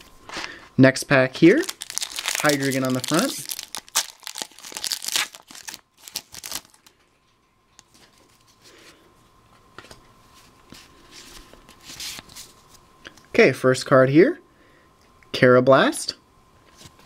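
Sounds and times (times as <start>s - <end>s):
trading cards rustling: 1.5s - 6.9s
foil wrapper crinkling and tearing: 1.5s - 7.0s.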